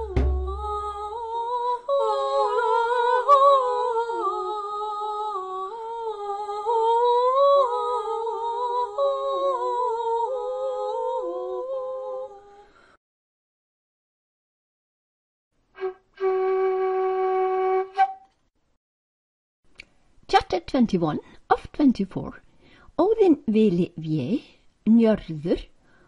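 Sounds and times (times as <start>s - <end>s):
low drum beat: 0.0s - 1.2s
hummed melody: 0.0s - 12.4s.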